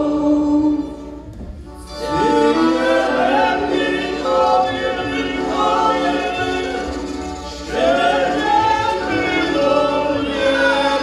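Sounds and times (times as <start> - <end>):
group singing a carol: 0.0 - 1.2, 1.9 - 11.0.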